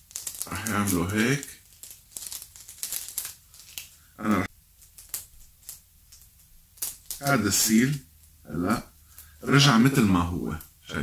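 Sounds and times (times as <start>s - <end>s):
cellophane crinkling: 0.0s - 10.7s.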